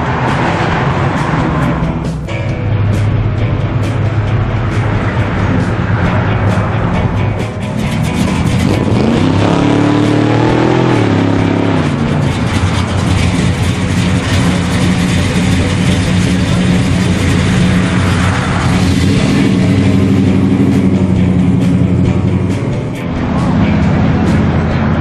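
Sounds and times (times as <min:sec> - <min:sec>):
car engine revving: 0:00.0 - 0:25.0.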